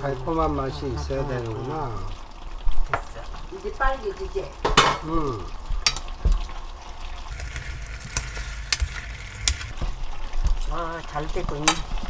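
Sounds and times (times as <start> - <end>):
sauce sizzling in a pan: 0.0 - 12.0
metal spoon stirring: 7.3 - 9.8.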